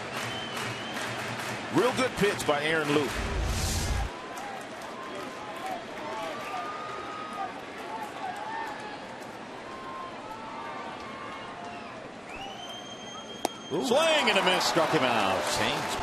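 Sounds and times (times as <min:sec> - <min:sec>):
crowd hum: 0:03.0 - 0:04.1
fans calling out: 0:13.7 - 0:16.0.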